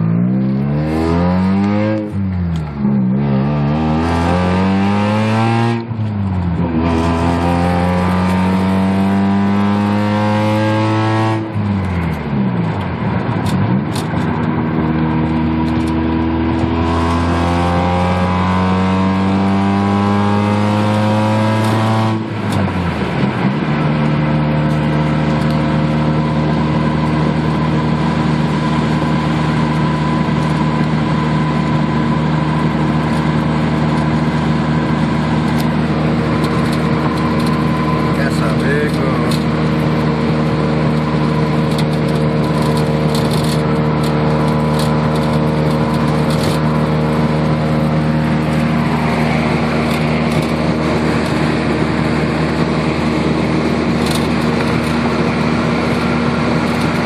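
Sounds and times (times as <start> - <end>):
car engine accelerating: 0.0 - 57.0.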